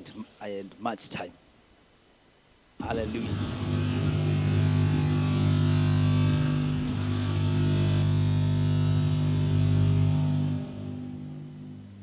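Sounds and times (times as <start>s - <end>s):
low drone from loudspeakers: 2.8s - 12.0s.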